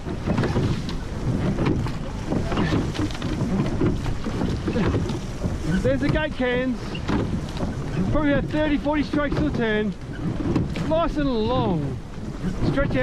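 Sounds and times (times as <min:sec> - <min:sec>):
water rushing past boat hull: 0:00.0 - 0:13.0
wind on microphone: 0:00.0 - 0:13.0.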